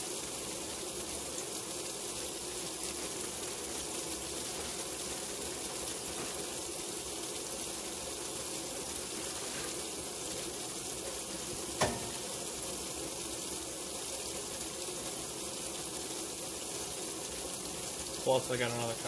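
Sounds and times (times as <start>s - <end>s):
water pouring into washer tub: 0.0s - 19.0s.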